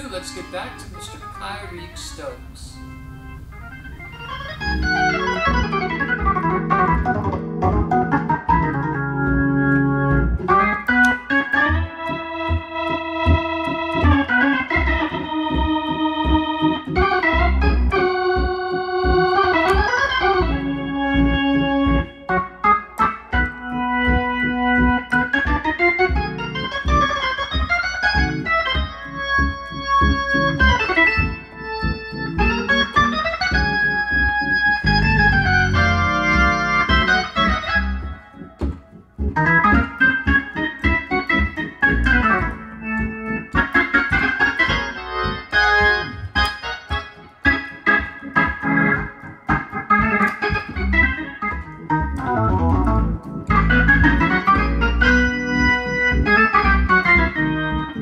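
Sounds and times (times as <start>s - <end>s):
organ chords: 0.0s - 58.0s
rhythmic bass line: 0.0s - 58.0s.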